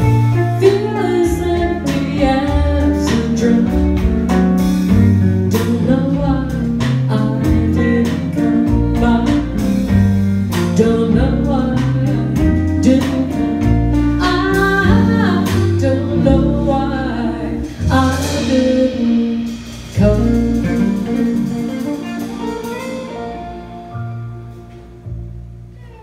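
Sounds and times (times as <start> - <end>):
walking bass line: 0.0 - 26.0
woman singing: 0.3 - 4.3, 5.5 - 22.5
electric guitar: 20.0 - 26.0.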